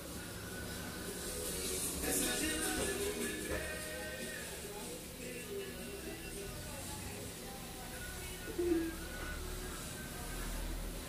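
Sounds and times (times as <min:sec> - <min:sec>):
hot-air station hissing: 0:00.0 - 0:11.0.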